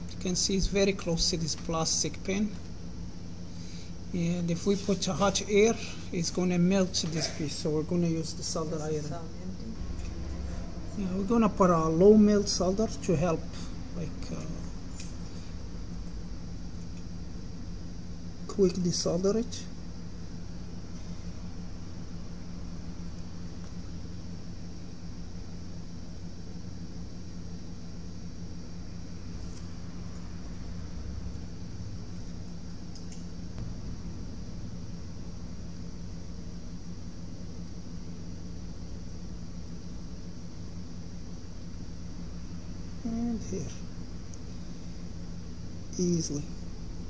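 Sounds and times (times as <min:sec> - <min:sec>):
low electrical hum: 0:00.0 - 0:47.0.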